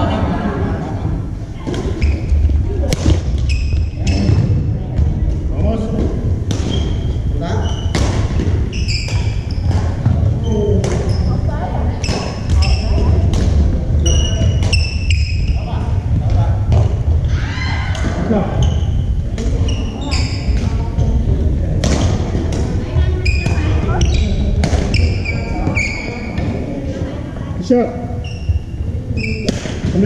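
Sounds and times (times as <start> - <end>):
sneakers squealing: 1.7 - 26.7, 28.0 - 30.0.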